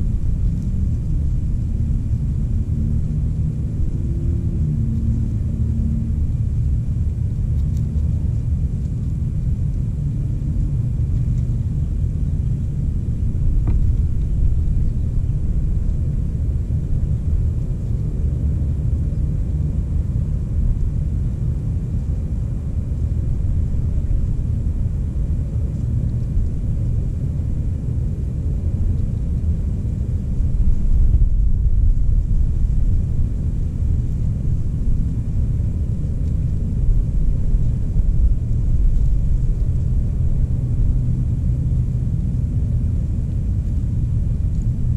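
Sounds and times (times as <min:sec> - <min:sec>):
wind buffeting microphone: 0:00.0 - 0:44.9.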